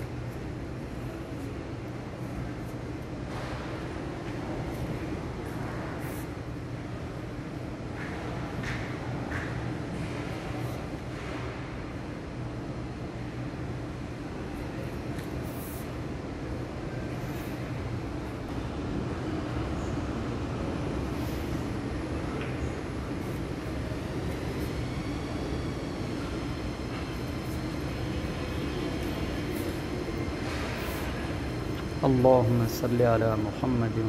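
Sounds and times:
shopping mall rumble and hum: 0.0s - 34.0s.

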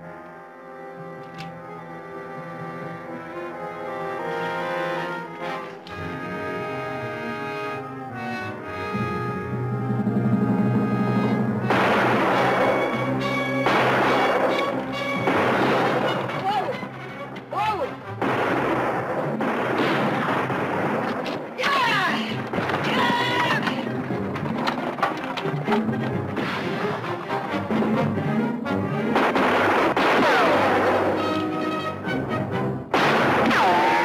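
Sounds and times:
orchestral music: 0.0s - 34.0s
rapid rifle gunfire: 11.7s - 16.4s, 18.2s - 21.6s, 29.1s - 31.4s.

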